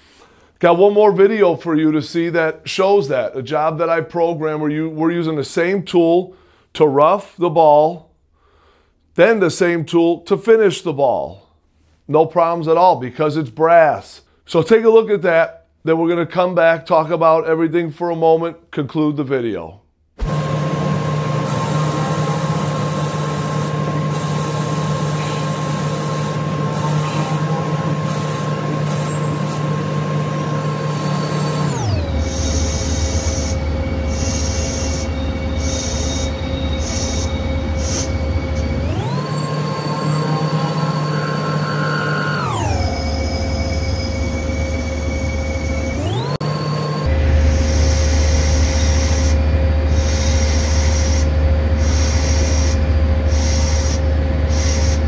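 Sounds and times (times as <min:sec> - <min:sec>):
lathe spindle whine: 0:20.2 - 0:55.0.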